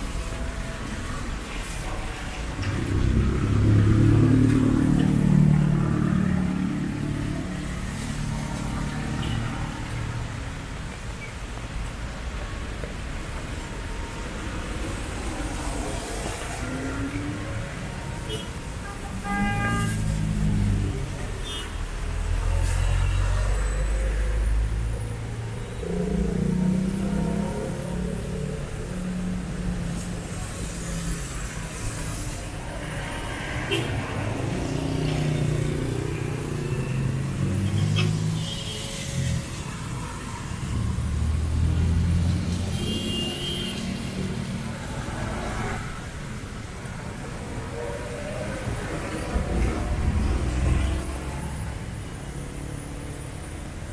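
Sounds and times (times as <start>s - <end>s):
vehicle engines rumbling past: 0.0s - 12.4s, 13.0s - 53.9s
tyres hissing on wet road: 0.0s - 24.8s, 25.4s - 53.9s.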